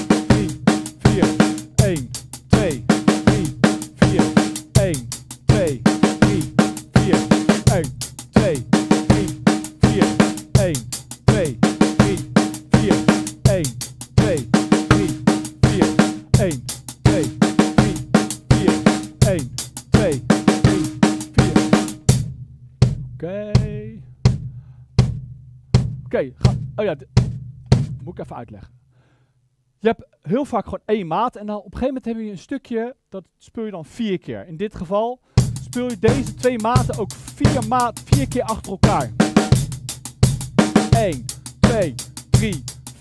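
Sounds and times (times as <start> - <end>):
drum kit groove: 0.0 - 28.1, 35.4 - 43.0.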